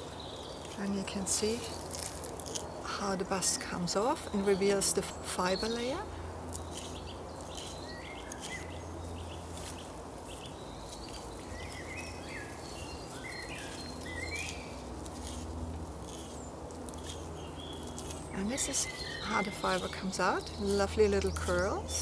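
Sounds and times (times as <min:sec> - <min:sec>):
low outdoor rumble: 0:00.0 - 0:22.0
small birds chirping: 0:00.0 - 0:22.0
knife scraping plant stem: 0:00.6 - 0:03.6, 0:04.6 - 0:12.2, 0:13.5 - 0:22.0.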